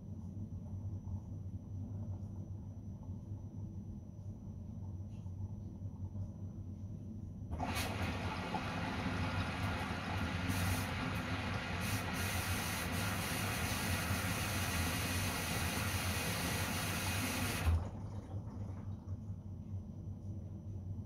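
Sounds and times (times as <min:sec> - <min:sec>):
water spraying into washing machine: 0:07.5 - 0:19.0.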